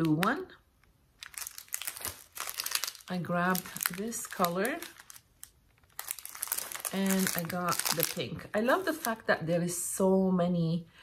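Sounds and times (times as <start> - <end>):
plastic packs crinkling: 0.0 - 9.3.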